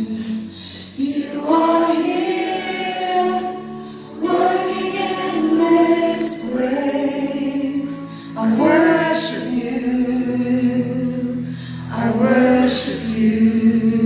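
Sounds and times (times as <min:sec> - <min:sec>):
congregation singing: 0:00.0 - 0:14.0
keyboard: 0:00.0 - 0:14.0.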